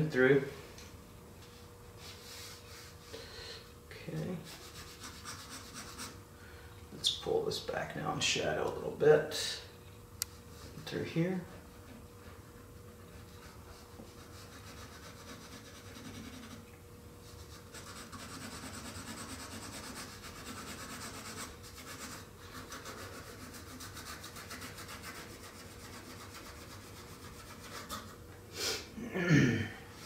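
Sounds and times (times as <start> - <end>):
pencil scratching on paper: 4.5 - 6.2, 12.8 - 16.6, 17.3 - 28.1.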